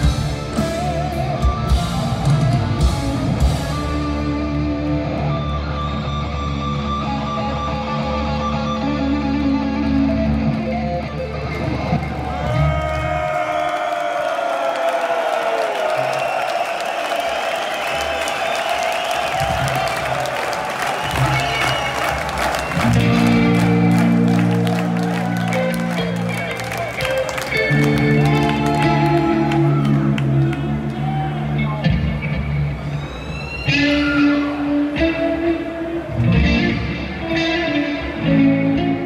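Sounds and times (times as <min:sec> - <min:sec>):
heavy metal band playing live: 0:00.0 - 0:13.2, 0:21.1 - 0:32.7, 0:33.4 - 0:39.0.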